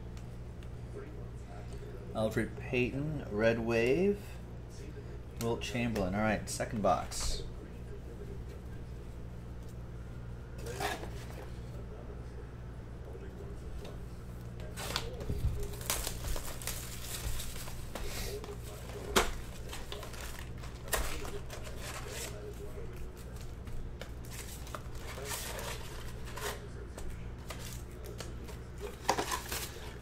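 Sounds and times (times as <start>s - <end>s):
steady low hum: 0.0s - 30.0s
foil packs rustling: 14.6s - 23.5s, 24.2s - 26.7s, 27.4s - 30.0s
plastic shrink wrap crinkling: 14.6s - 23.5s, 24.2s - 26.7s.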